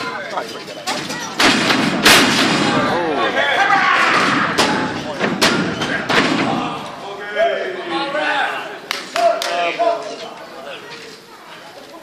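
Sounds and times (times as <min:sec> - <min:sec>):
wrestlers impacting ring: 0:00.8 - 0:06.9
spectators shouting: 0:02.6 - 0:05.0.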